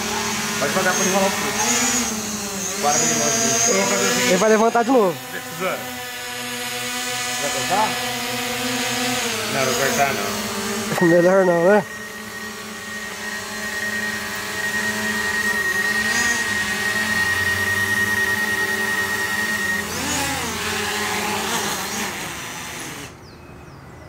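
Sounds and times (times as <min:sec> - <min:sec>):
drone propellers buzzing: 0:00.0 - 0:23.3.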